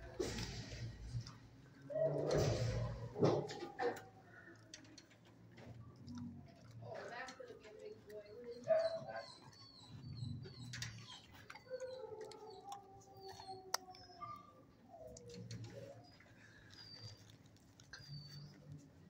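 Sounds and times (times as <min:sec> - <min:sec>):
dogs whining and howling: 0:00.7 - 0:04.6, 0:08.2 - 0:18.9.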